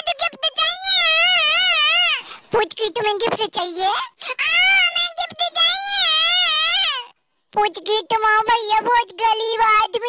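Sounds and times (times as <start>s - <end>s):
high-pitched voice chanting: 4.4s - 10.0s.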